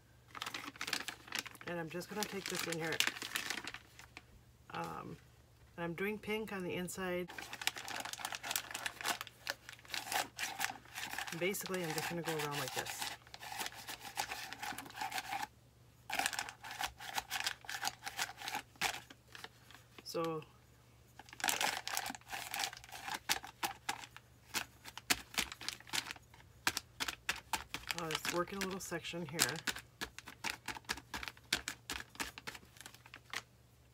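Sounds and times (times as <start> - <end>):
plastic bag crinkling: 0.3 - 4.2, 7.2 - 15.5, 16.1 - 20.4, 21.2 - 33.5.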